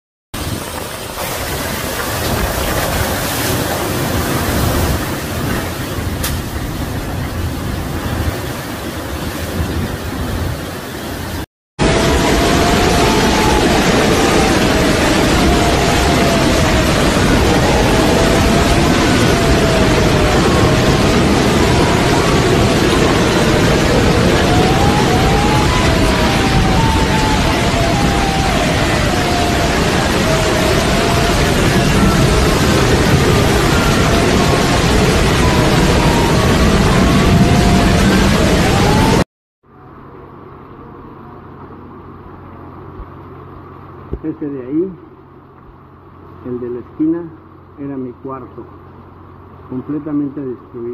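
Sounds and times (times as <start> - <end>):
wind and heavy rain rushing: 0.4 - 39.3
wind whistling: 0.4 - 39.3.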